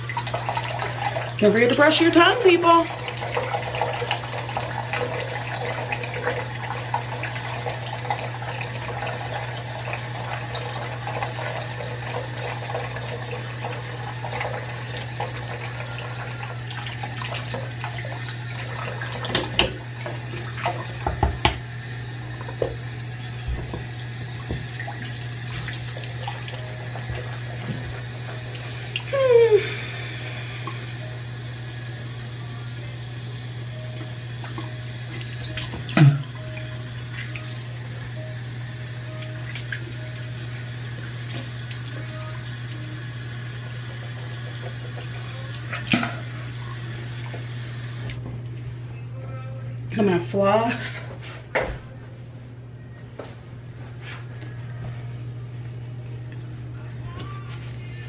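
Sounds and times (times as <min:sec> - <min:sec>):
short hummed sound: 0:00.0 - 0:50.2, 0:50.8 - 0:58.0
tap running into a sink: 0:18.8 - 0:21.7, 0:22.4 - 0:28.4, 0:34.0 - 0:36.4, 0:44.6 - 0:46.3.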